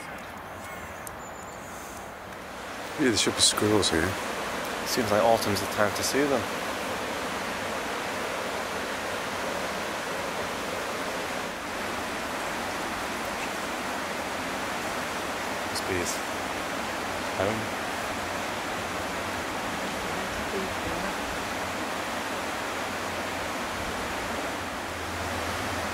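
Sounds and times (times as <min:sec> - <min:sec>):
steady rushing outdoor noise: 0:00.0 - 0:25.9.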